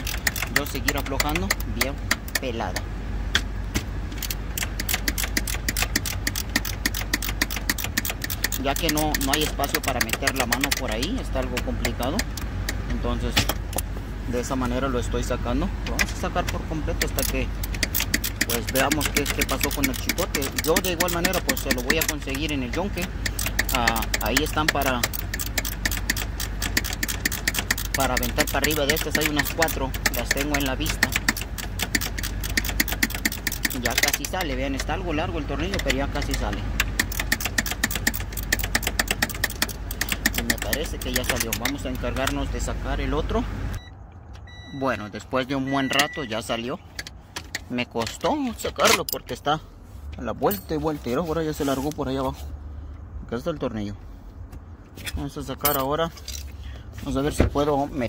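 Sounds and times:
ratchet wrench clicking: 0:00.0 - 0:02.9, 0:04.1 - 0:12.8, 0:16.1 - 0:42.4.

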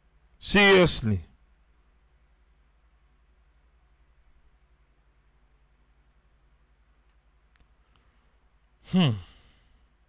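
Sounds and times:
man sighing hmm: 0:08.8 - 0:09.7.

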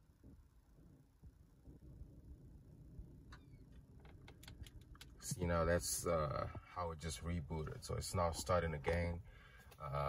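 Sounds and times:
low rumble: 0:00.0 - 0:04.0.

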